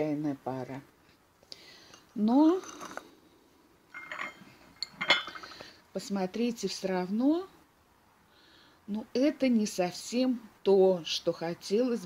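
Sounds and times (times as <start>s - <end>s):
porcelain clink: 3.9s - 5.6s.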